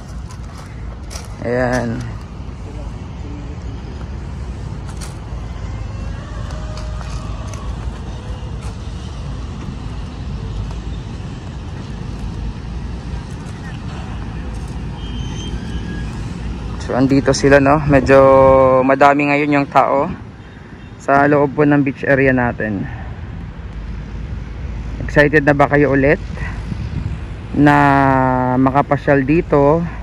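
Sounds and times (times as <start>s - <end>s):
city road traffic rumble: 0.0s - 30.0s.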